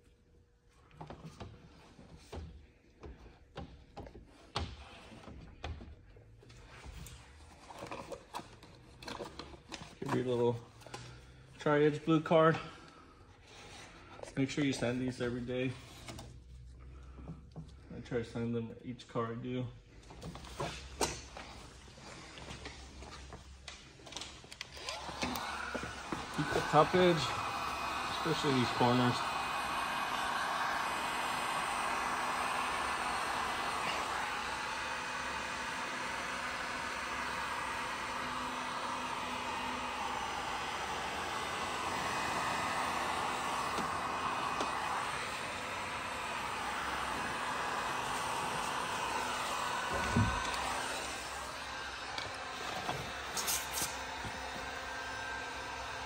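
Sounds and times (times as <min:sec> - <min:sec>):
heat gun blowing: 0:24.6 - 0:56.0.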